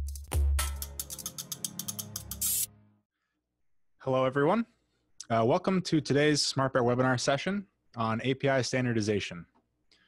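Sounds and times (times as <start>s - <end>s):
ratchet-like clicks: 0.0s - 2.7s
short hiss: 2.3s - 2.7s.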